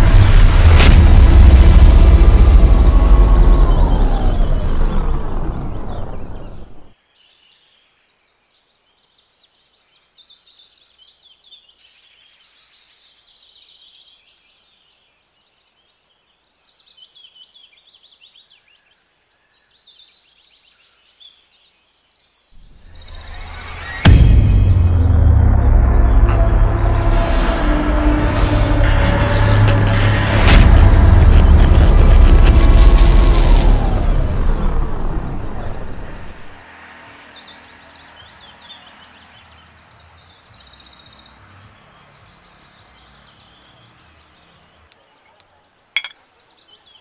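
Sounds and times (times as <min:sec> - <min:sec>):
cinematic music: 0:00.0 - 0:06.9, 0:22.8 - 0:36.6
heavy cinematic boom: 0:00.0 - 0:06.9, 0:22.6 - 0:36.6.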